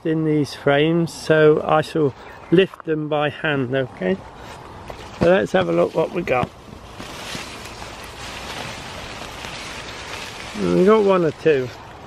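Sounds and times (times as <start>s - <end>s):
hands digging in compost: 4.4s - 12.0s.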